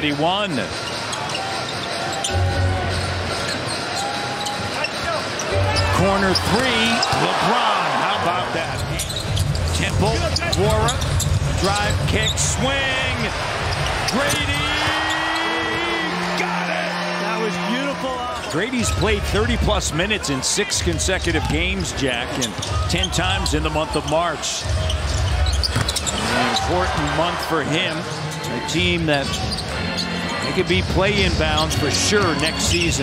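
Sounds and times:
crowd noise: 0.0 - 33.0
crowd cheering and whooping: 13.0 - 18.3.

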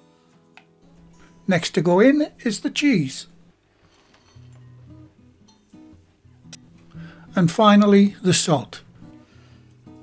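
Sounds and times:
quiet guitar music: 0.0 - 10.0.

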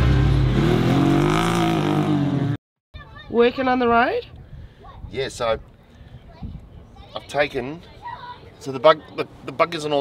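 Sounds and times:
buggy engine passing at speed: 0.0 - 2.6.

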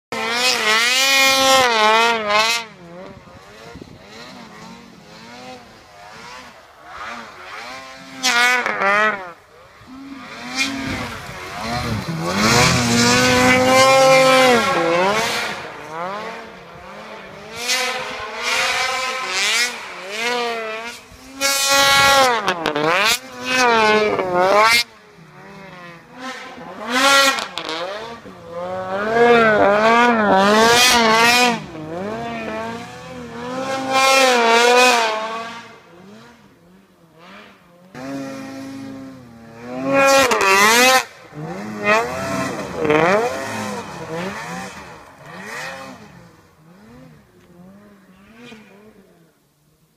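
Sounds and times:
snowmobile engine revving: 0.1 - 49.5.

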